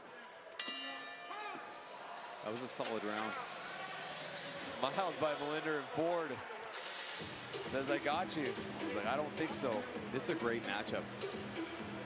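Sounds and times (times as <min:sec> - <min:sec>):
boxing ring bell ringing: 0:00.6 - 0:02.5.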